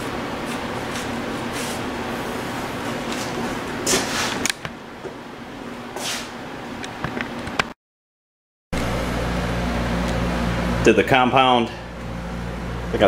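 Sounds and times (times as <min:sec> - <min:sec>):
towel wiping painted panel: 0:00.4 - 0:04.4.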